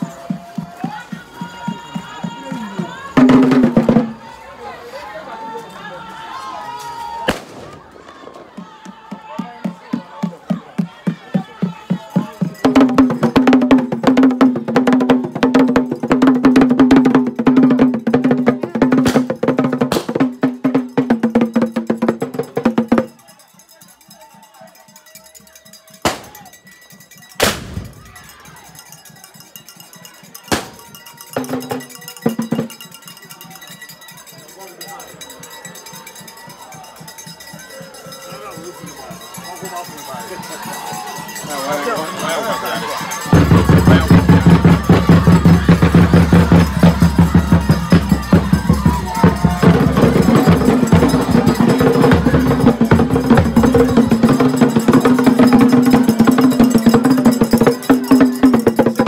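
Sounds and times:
drum beaten fast with sticks: 0.0 - 4.2, 8.6 - 23.2, 25.6 - 34.2, 35.0 - 59.0
voices: 0.0 - 59.0.

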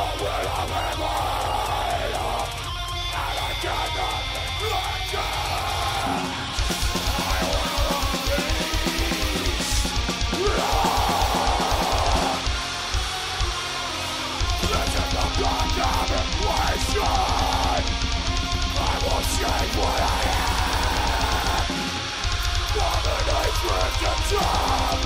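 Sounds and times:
distorted guitars: 0.0 - 25.0
harsh screamed vocal: 0.0 - 25.0
fast bass drum: 6.6 - 13.5, 14.4 - 25.0.

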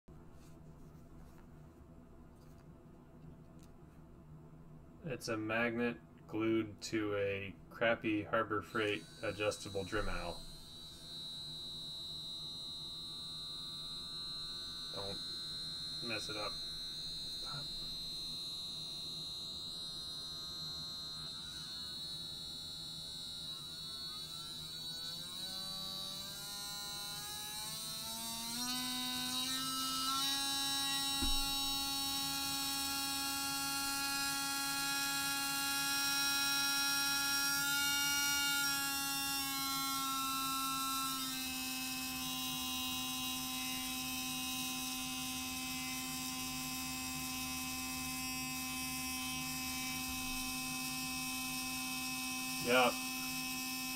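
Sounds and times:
rotary tool motor whine: 8.6 - 53.9.

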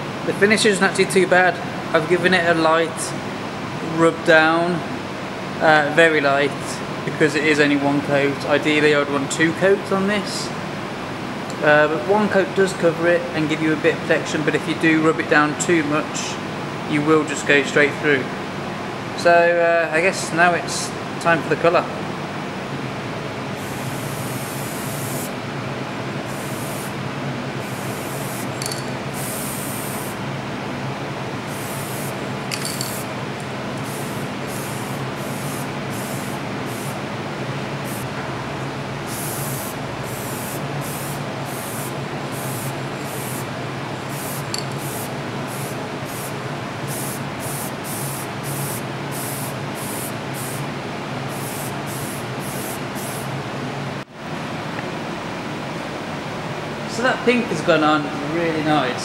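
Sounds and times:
steady low hum: 20.8 - 59.0
aerosol paint can spraying: 23.6 - 25.3, 26.3 - 27.0, 27.6 - 30.2, 31.5 - 33.1, 33.8 - 37.0, 37.9 - 38.1, 39.1 - 43.5, 44.1 - 50.6, 51.3 - 53.2.

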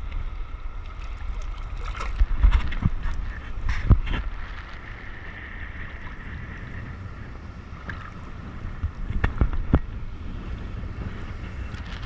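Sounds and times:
sea water lapping and sloshing: 0.0 - 12.0.

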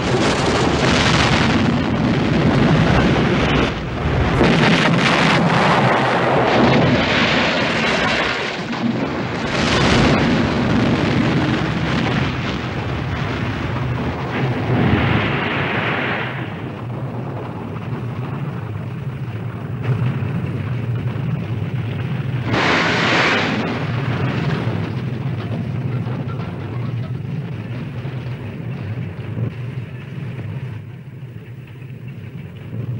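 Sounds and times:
crackling hiss: 0.0 - 25.8
explosion and fire blast noise: 0.0 - 31.2
steady low rumble: 0.0 - 32.9.

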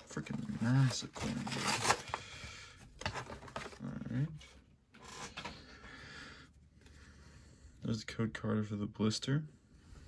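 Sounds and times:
packaging rustling and scraping: 0.0 - 4.1, 4.9 - 5.7.

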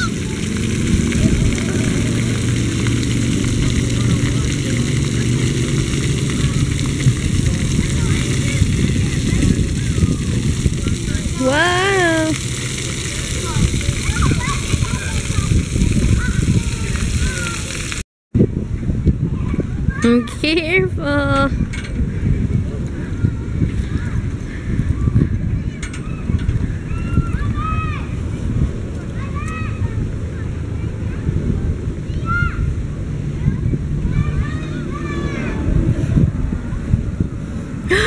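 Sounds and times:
water jets spraying: 0.0 - 18.0
children's voices: 11.3 - 12.4, 13.2 - 17.8, 22.9 - 37.0.

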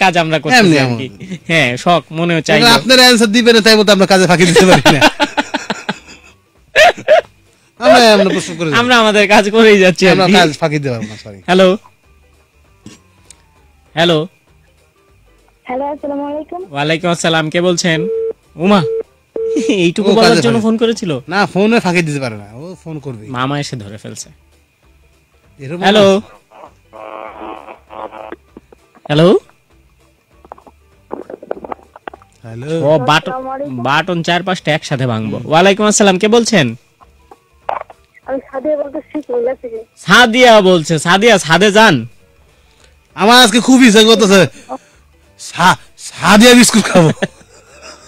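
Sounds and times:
person speaking: 7.8 - 9.2, 19.6 - 20.8, 32.4 - 34.2, 43.2 - 44.8
telephone tone: 18.0 - 19.6
studio speech: 20.0 - 20.7, 32.6 - 34.1.

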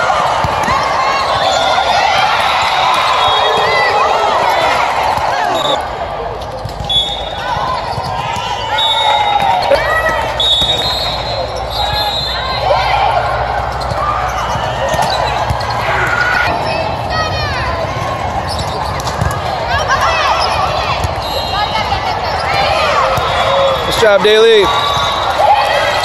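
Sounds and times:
players and spectators calling out: 0.0 - 26.0.

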